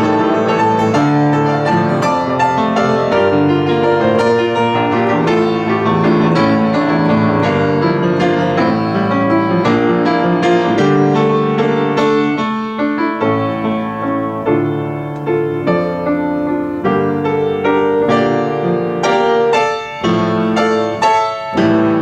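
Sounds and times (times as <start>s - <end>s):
upright piano playing: 0.0s - 22.0s.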